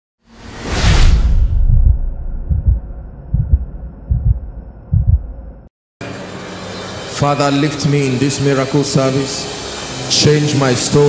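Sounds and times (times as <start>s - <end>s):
whoosh: 0.3s - 4.6s
deep low rumble: 0.6s - 5.7s
deep low thuds: 0.8s - 5.7s.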